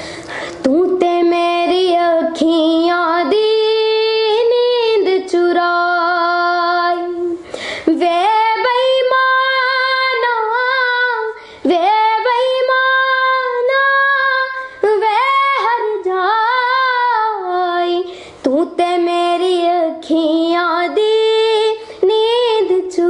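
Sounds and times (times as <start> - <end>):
girl singing unaccompanied: 0.6 - 23.0.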